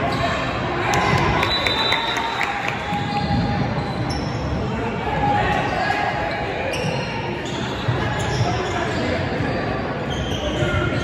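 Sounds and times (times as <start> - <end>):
chatter of spectators: 0.0 - 11.0.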